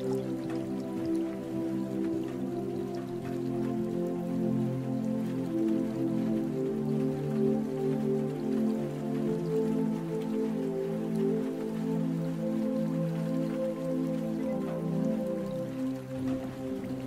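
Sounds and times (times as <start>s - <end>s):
calm new-age music: 0.0s - 17.0s
rain falling into water: 0.0s - 17.0s.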